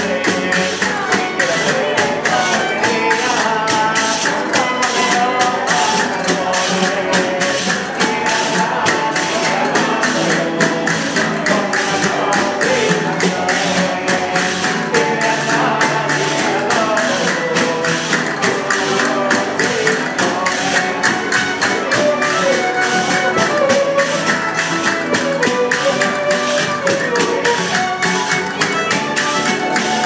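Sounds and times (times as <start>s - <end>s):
lute playing: 0.0s - 30.0s
strummed guitars: 0.0s - 30.0s
tambourine beat: 0.0s - 30.0s
violins playing a tune: 0.0s - 30.0s.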